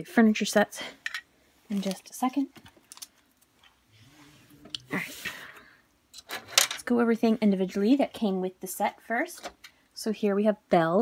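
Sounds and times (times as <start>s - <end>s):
woman speaking: 0.0s - 1.0s, 1.7s - 2.6s, 4.8s - 5.5s, 6.8s - 9.4s, 10.0s - 11.0s
plastic dollhouse pieces handled: 1.7s - 3.8s.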